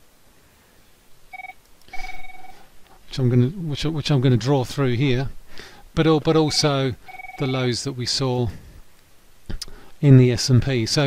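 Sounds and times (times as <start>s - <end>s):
electronic beeps: 1.3s - 2.6s, 6.5s - 7.6s.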